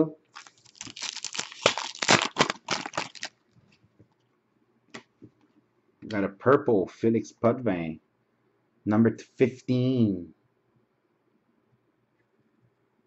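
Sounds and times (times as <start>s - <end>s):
wrapper tearing and crinkling: 0.3s - 3.3s.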